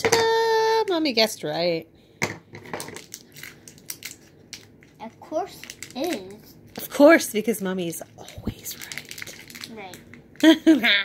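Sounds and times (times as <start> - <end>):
foil wrapper crackling: 2.9 - 6.4, 8.2 - 10.6.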